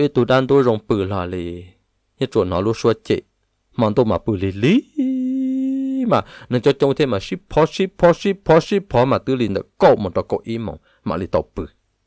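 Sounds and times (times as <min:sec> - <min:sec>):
man speaking: 0:00.0 - 0:11.8
man humming steady tone: 0:04.7 - 0:06.4.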